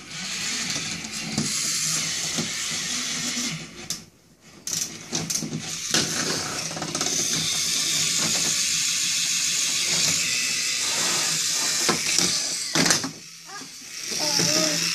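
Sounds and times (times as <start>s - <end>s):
toy train motor whirring: 0.0s - 14.9s.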